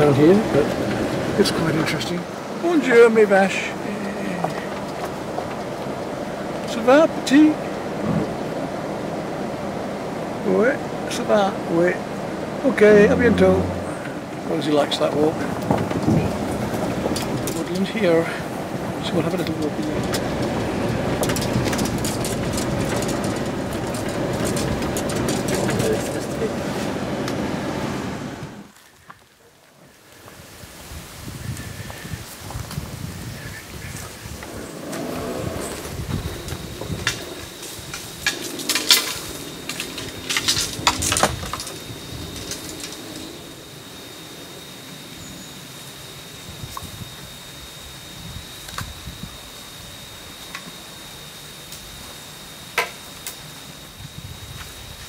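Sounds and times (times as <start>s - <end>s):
vehicle driving on rough track: 0.0s - 28.8s, 31.4s - 45.6s
thin high tone: 12.6s - 14.6s.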